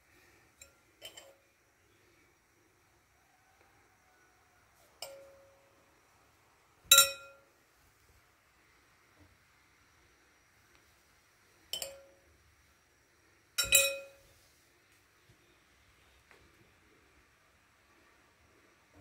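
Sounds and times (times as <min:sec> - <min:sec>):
metal spoon clinking bowl: 0:00.6 - 0:01.4, 0:05.0 - 0:05.4, 0:06.9 - 0:07.4, 0:11.7 - 0:12.2, 0:13.6 - 0:14.2.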